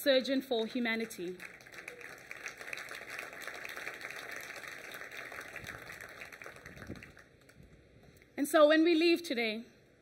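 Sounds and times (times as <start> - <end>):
audience applauding: 1.1 - 7.6.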